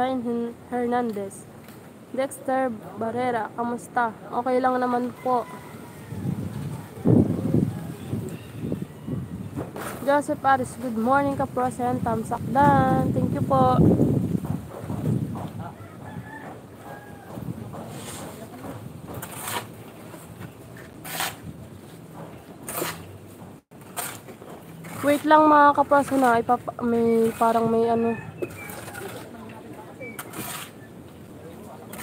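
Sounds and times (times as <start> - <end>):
faint rooster crowing: 5.1 - 9.6, 15.6 - 17.7, 27.7 - 29.4.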